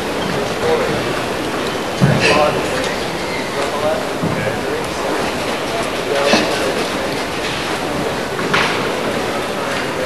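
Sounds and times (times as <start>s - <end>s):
arena crowd murmur: 0.0s - 10.0s
background voices: 0.0s - 10.0s.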